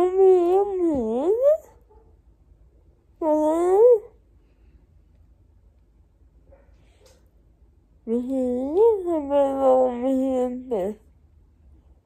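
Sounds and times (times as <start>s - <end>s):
woman whining slurred: 3.2s - 4.1s.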